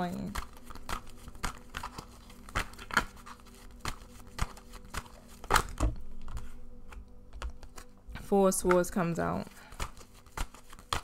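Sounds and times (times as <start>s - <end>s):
cards clicking and tapping: 0.3s - 7.9s, 9.7s - 11.0s.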